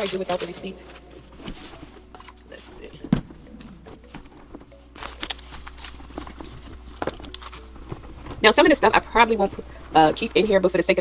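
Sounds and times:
faint background music: 0.0s - 11.0s
items knocking and rustling in bag: 0.0s - 11.0s.

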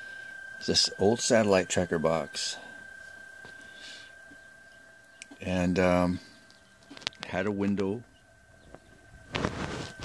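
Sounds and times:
radio receiver hiss: 0.0s - 4.4s, 8.6s - 10.0s.

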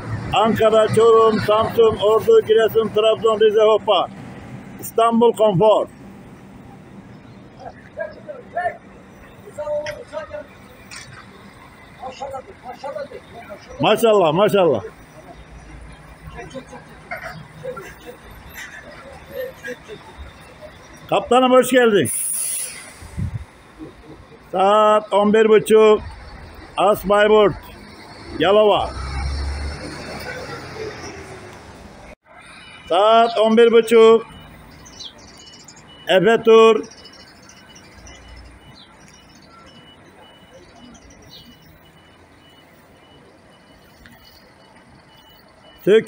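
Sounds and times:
diesel engine running low: 0.0s - 46.0s
compressed air hissing: 22.1s - 23.5s
faint high beep: 37.0s - 45.9s.

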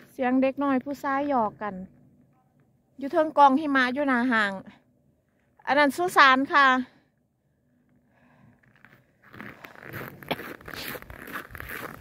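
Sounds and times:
footsteps crunching on frozen snow: 8.7s - 12.0s.

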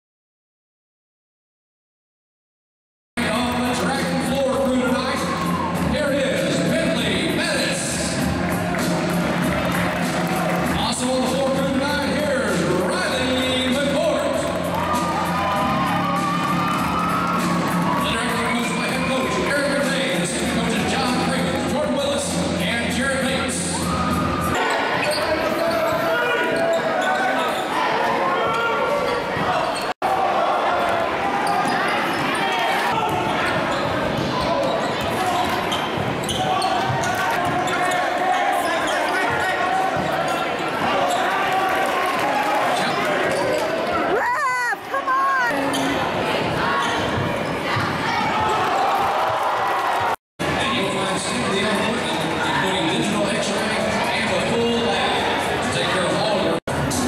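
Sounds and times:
crowd voices and chatter: 3.2s - 57.0s.

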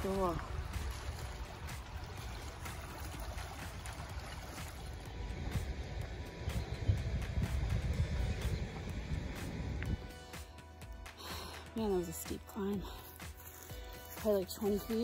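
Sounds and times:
water rushing through spillway: 0.0s - 8.1s
wind noise on microphone: 0.0s - 10.2s
faint background music: 0.0s - 15.0s.

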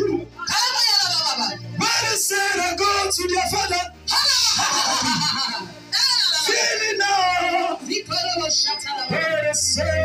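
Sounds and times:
person crying out: 4.3s - 5.8s.

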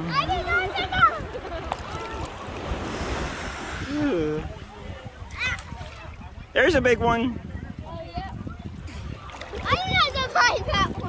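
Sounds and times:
child's voice: 0.0s - 1.4s, 5.3s - 5.7s, 9.6s - 11.0s
sea water sloshing and splashing: 0.0s - 6.5s, 8.2s - 11.0s.

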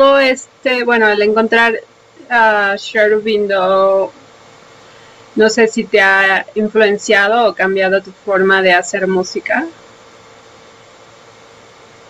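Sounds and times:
background hiss: 0.0s - 12.0s
faint hum: 0.0s - 12.0s.

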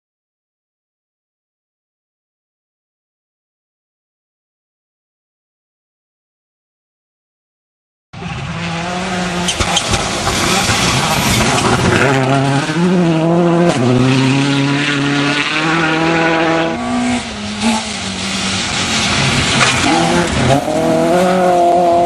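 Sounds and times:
car passing close by: 8.2s - 22.0s
rally car engine revving: 8.2s - 22.0s
tyres hissing on gravel: 17.3s - 20.4s.

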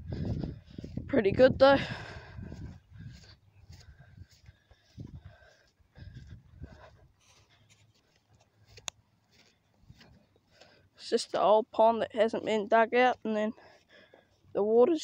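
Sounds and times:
footsteps on wet grass: 0.0s - 15.0s.

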